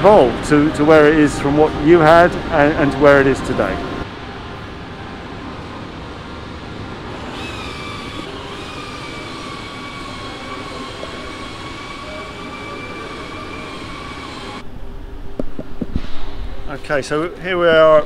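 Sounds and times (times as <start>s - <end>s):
machinery noise: 0.0s - 14.8s.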